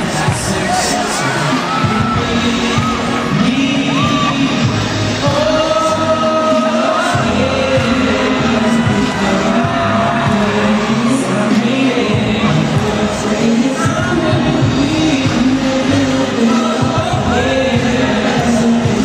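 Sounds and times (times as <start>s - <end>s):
song sung with music: 0.0s - 19.0s.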